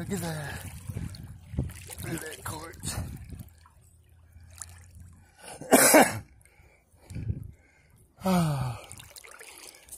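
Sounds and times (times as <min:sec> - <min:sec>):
trickling river water: 0:00.0 - 0:09.9
person coughing: 0:05.6 - 0:06.2.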